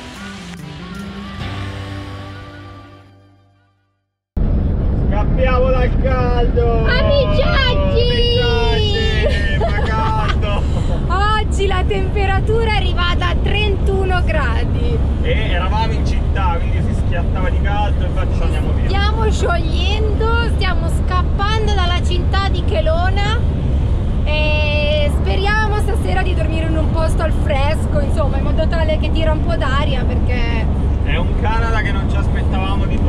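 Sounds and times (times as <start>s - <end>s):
van driving rumble: 4.4s - 33.0s
woman laughing: 8.8s - 11.1s
woman talking: 11.0s - 15.0s, 18.9s - 23.4s, 24.3s - 30.7s.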